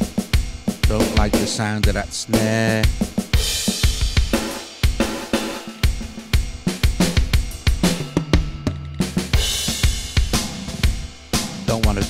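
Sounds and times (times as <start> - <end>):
hi-hat: 0.0 - 8.2, 9.4 - 12.0
drum machine rock beat: 0.0 - 12.0
snare drum: 0.7 - 12.0
kick drum: 2.9 - 5.2.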